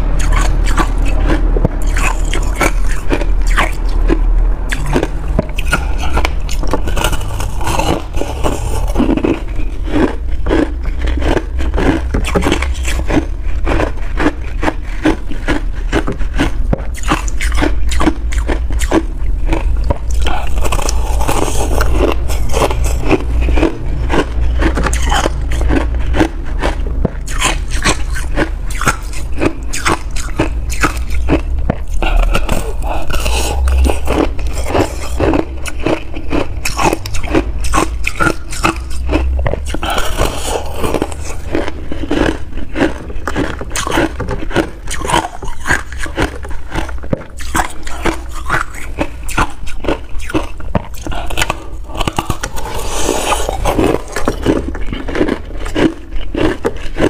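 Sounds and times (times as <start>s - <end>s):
ice crunching being chewed: 0.0s - 57.0s.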